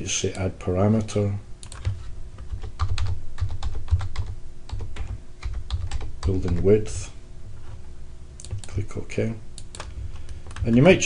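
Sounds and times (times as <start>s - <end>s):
computer keyboard key clicks: 1.6s - 2.0s, 8.4s - 8.8s.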